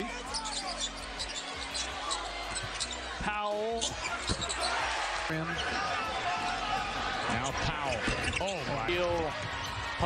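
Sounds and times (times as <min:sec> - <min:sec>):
crowd noise: 0:00.0 - 0:10.0
sneaker squeaks: 0:00.2 - 0:04.8, 0:07.4 - 0:09.8.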